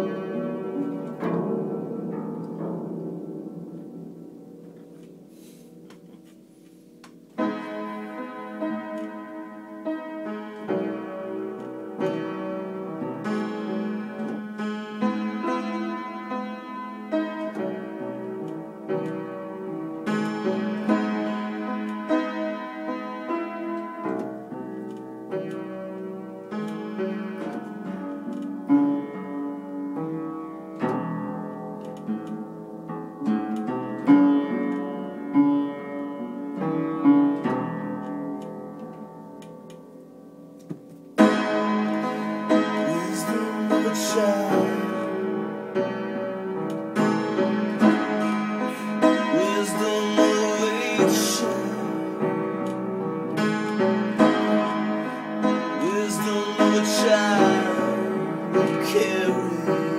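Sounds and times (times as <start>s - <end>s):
upright piano playing: 0.0s - 6.2s, 7.2s - 59.9s.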